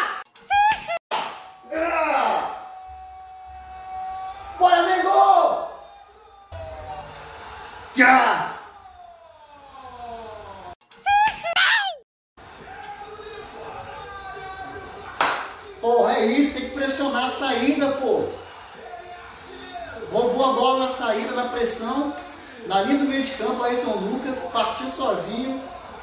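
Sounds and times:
sharp slap: 1.1 - 1.5.

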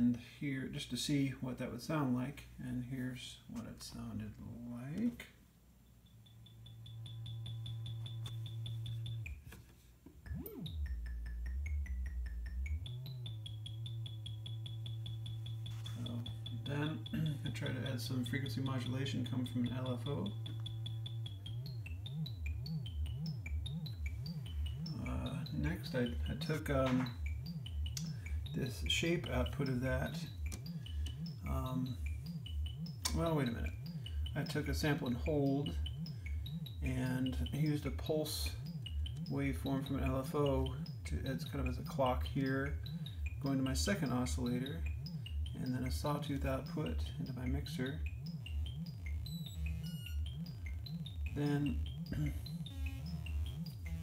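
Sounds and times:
low synthesizer tone wobbling in pitch: 6.3 - 9.5, 10.2 - 54.0
short high synthesizer blips: 10.2 - 54.0.

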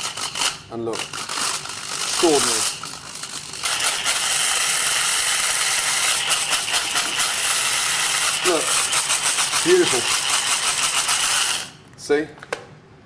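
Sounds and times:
hand blender grinding spices: 0.0 - 11.8.

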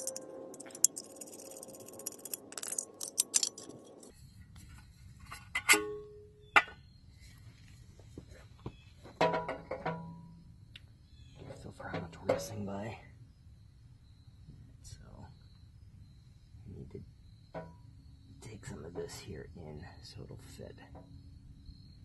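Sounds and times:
metal clinks: 0.0 - 4.1
screwdriver turning screws: 0.0 - 4.1.

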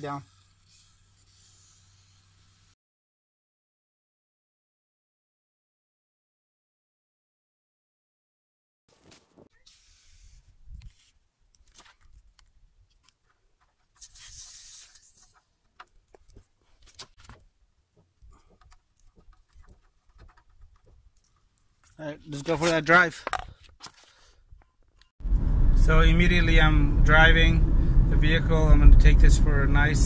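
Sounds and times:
aerosol can hissing: 14.1 - 15.1
clicks and handling knocks: 15.3 - 24.0.

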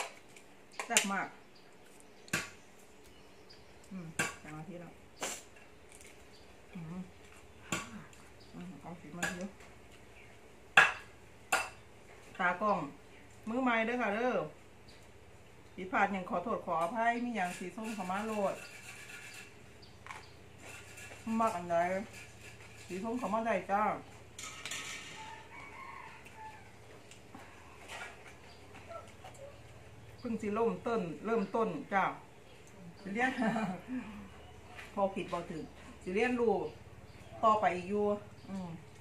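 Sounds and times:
person eating by hand: 5.2 - 8.5
faint rooster crowing: 25.0 - 27.9.

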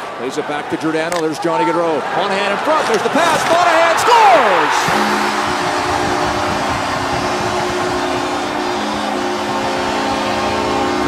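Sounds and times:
crowd cheering: 0.0 - 11.0
goal horn: 4.3 - 11.0.

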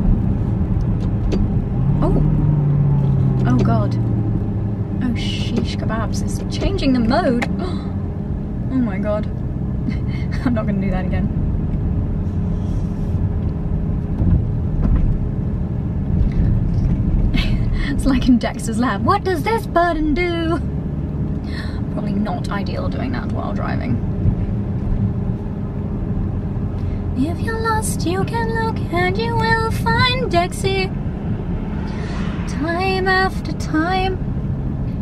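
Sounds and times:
car engine droning in cabin: 0.0 - 35.0.

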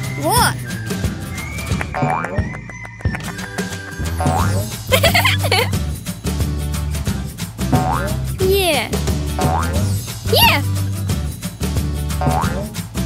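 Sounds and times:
background music with bass line: 0.0 - 13.0
cartoon spring boing: 12.2 - 12.7.

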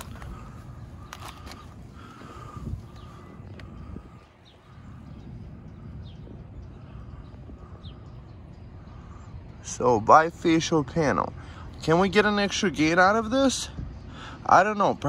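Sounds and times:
wind rumble on microphone: 0.0 - 15.0.

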